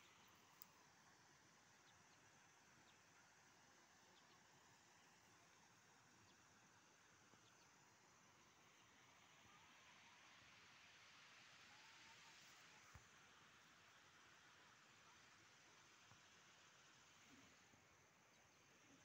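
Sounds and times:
faint background hiss: 0.0s - 19.0s.

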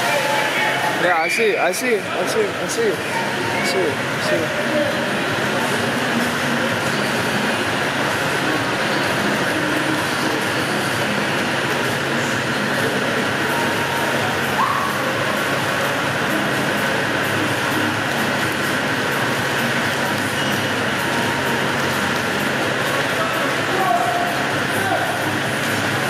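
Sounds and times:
echoing pool hall background noise: 0.0s - 26.0s.

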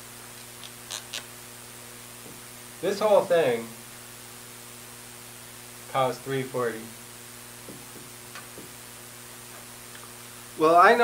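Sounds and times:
electrical mains hum: 0.0s - 11.0s
person speaking: 2.8s - 3.8s.

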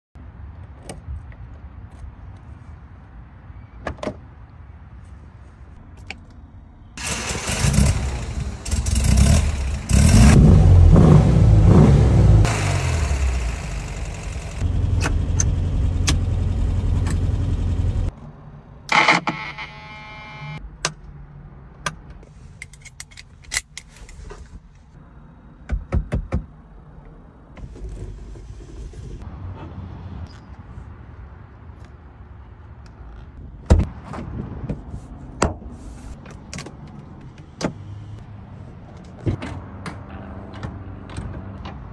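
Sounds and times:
car engine starting and revving: 7.0s - 18.1s.

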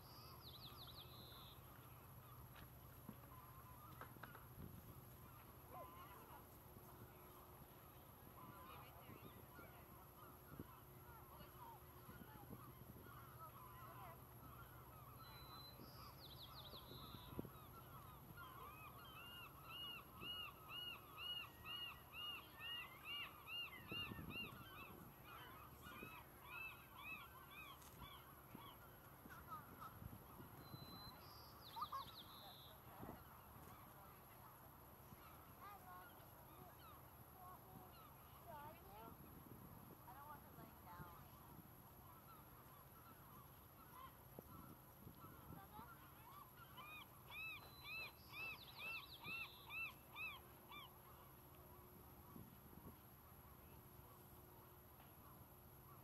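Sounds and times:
faint bird calls: 0.0s - 56.0s.

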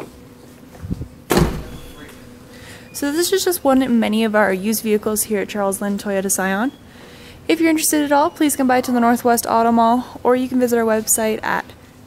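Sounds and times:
car liftgate slamming shut: 1.3s - 2.3s.

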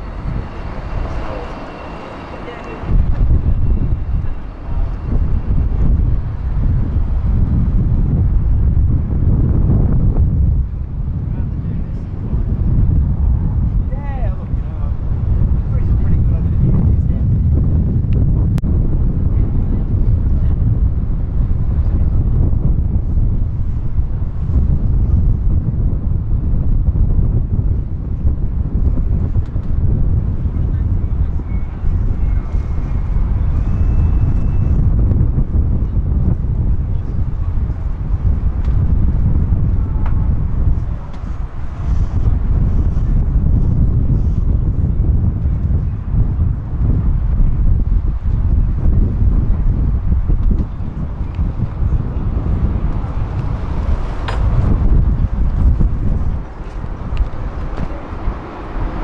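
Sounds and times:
faint voices: 0.0s - 5.3s
wind buffeting microphone: 0.0s - 59.0s.

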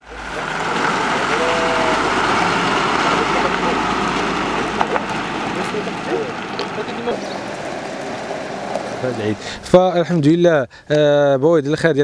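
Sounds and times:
garbage truck engine running: 0.0s - 9.8s
outdoor noise: 0.0s - 12.0s.

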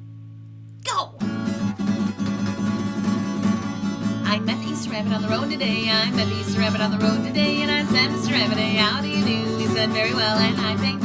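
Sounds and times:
acoustic guitar strumming chords: 1.0s - 11.0s.

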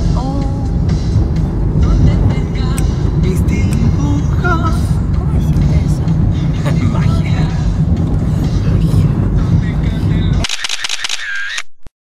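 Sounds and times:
car cabin rumble: 0.0s - 10.4s
sharp clicks: 10.4s - 11.9s.

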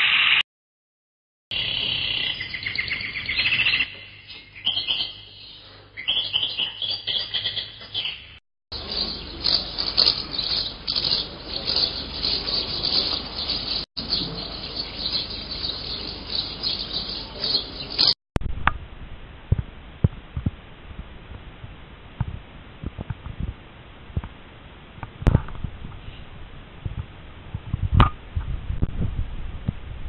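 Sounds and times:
insects calling: 1.5s - 8.2s, 8.8s - 18.2s
birds chirping: 1.5s - 18.2s.

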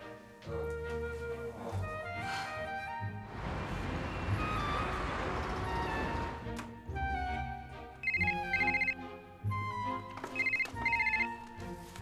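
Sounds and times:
telephone ringtone: 8.0s - 9.0s, 10.4s - 11.4s.

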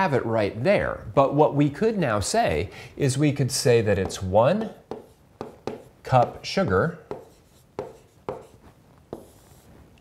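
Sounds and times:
stylus tapping on a tablet screen: 4.0s - 6.4s, 7.1s - 9.4s.

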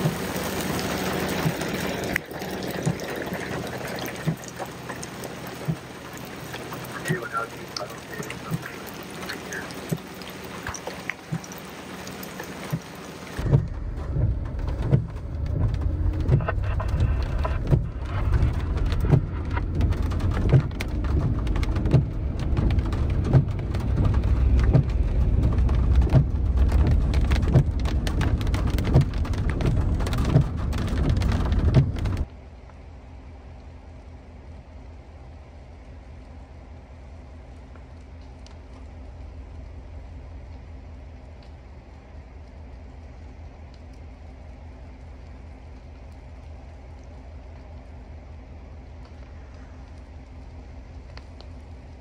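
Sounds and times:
vehicle driving on wet road: 0.0s - 32.5s
rain on wet pavement: 0.0s - 32.7s, 33.5s - 52.0s
raindrops ticking: 0.0s - 32.8s, 33.5s - 52.0s.

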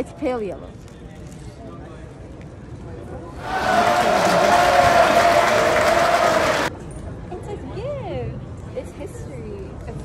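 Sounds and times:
crowd applause: 3.4s - 6.7s.

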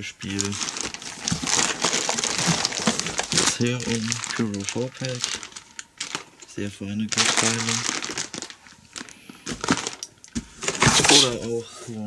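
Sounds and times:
plastic wrapping crinkling: 0.0s - 11.6s.

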